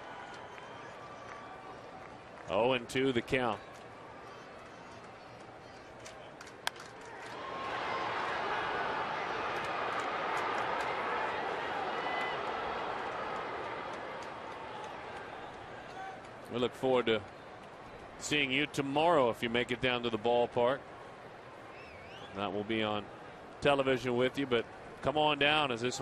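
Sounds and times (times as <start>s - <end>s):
crowd cheering: 0.0s - 26.0s
wooden bat cracking: 6.1s - 7.4s.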